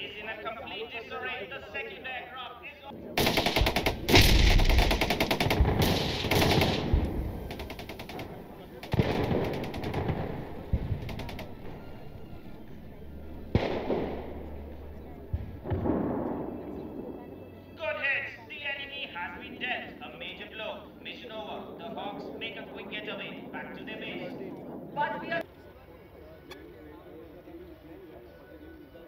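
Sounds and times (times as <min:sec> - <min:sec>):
sharp bang: 0:03.2 - 0:17.0
automatic cannon fire: 0:03.2 - 0:17.2.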